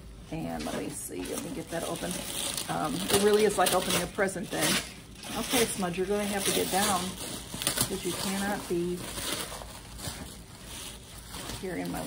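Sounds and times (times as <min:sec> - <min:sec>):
paper packaging rustling: 0:00.5 - 0:12.0.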